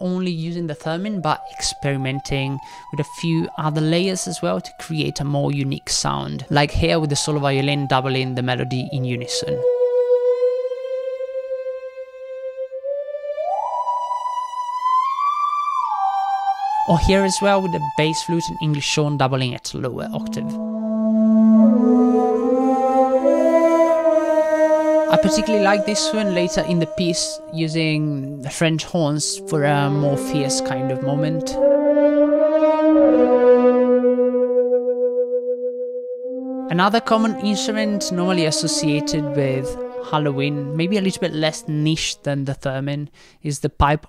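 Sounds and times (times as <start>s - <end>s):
theremin melody: 0.0s - 42.2s
french horns: 9.6s - 14.0s, 20.1s - 28.5s, 29.2s - 41.8s
solo violin: 20.1s - 28.4s, 37.0s - 42.1s.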